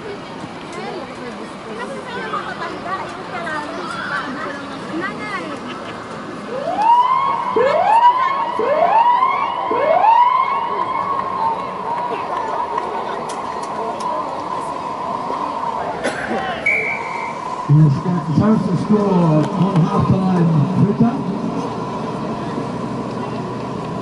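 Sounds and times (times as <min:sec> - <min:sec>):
siren wailing: 0:06.5 - 0:11.8.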